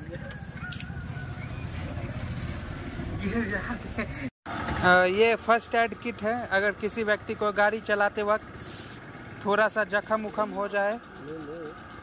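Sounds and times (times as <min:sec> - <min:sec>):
low rumble of street noise: 0:00.0 - 0:12.0.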